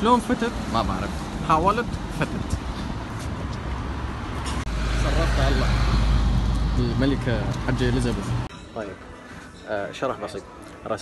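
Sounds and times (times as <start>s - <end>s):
street traffic engine rumble: 0.0s - 8.5s.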